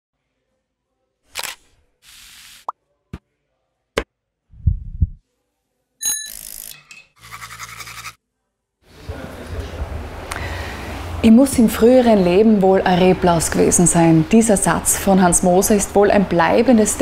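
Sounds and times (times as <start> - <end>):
electric toothbrush buzzing: 6.3 - 8.2.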